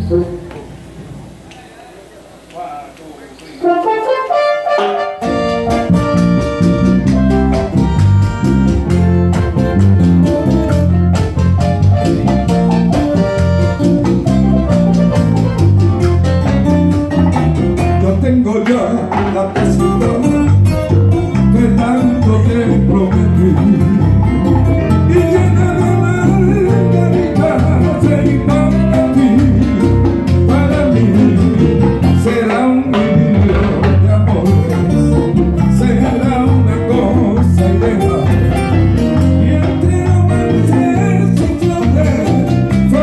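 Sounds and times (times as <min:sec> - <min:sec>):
latin band playing instrumental: 0:00.0 - 0:01.4, 0:03.5 - 0:43.0.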